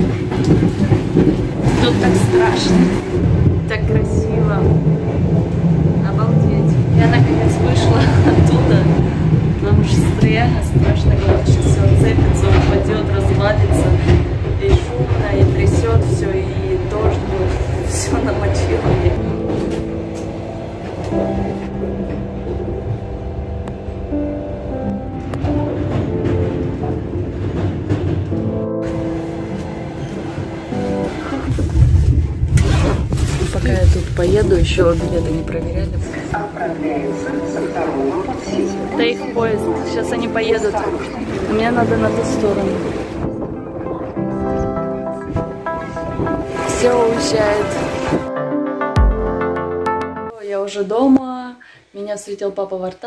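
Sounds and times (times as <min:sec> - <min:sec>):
train rumbling: 0:00.0 - 0:48.3
music playing: 0:00.0 - 0:50.4.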